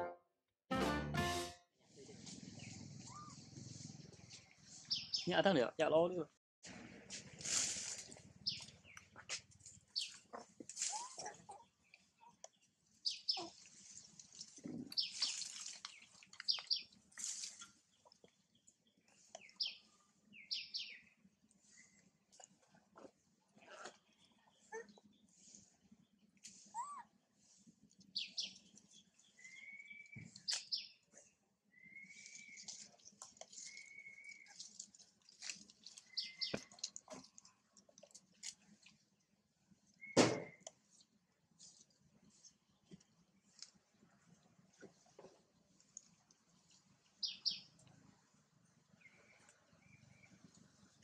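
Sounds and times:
faint birdsong chirps: 2.4s - 5.4s, 8.4s - 22.3s, 23.8s - 37.8s, 39.7s - 44.4s, 45.4s - 51.0s
bird chirping: 4.2s - 5.4s, 8.4s - 9.2s, 9.9s - 10.4s, 11.5s - 13.6s, 14.9s - 17.0s, 17.9s - 22.0s, 28.1s - 31.0s, 31.7s - 34.7s, 35.8s - 36.8s, 46.7s - 47.8s
whistled bird notes: 29.3s - 30.9s, 31.7s - 32.8s, 33.6s - 34.6s, 36.1s - 36.7s, 40.0s - 40.6s.

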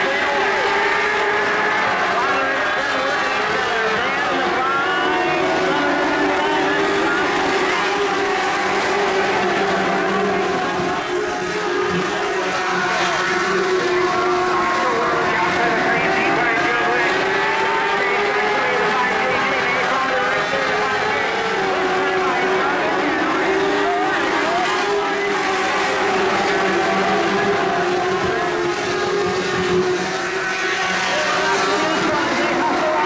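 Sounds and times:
race car engines: 0.0s - 33.0s.

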